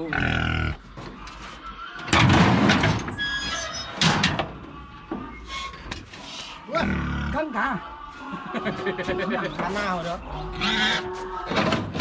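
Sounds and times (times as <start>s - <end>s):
pig squealing: 0.0s - 0.8s, 6.7s - 7.5s, 10.4s - 11.2s.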